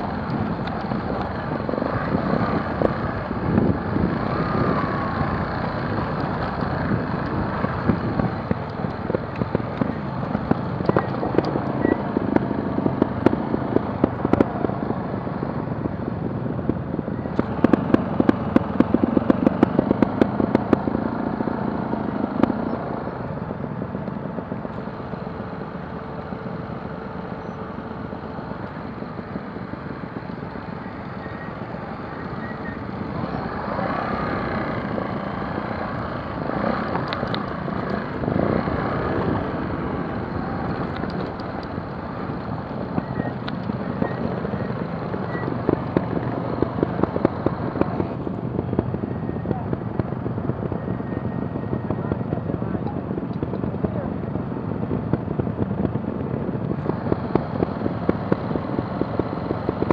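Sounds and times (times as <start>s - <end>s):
motorcycle engines at low speed: 0.0s - 59.9s
rapid engine popping: 17.3s - 23.1s, 29.7s - 50.9s, 51.8s - 59.9s.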